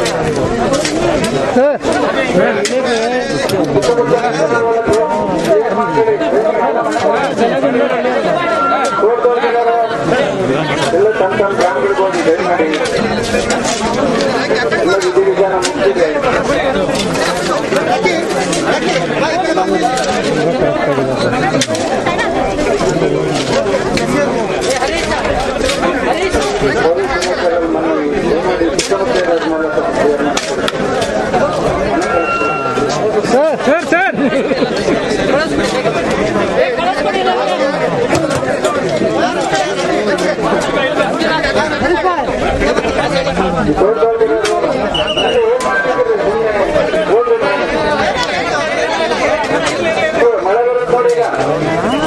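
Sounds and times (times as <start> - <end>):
babble of overlapping voices: 0.0 - 52.0
crowd chatter: 0.0 - 52.0.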